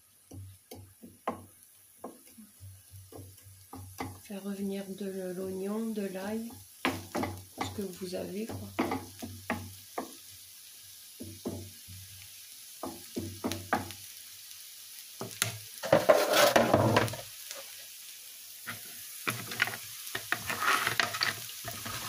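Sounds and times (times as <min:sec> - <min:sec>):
food sizzling: 0:00.0 - 0:22.0
spatula scraping in frying pan: 0:15.3 - 0:17.8, 0:18.6 - 0:22.0.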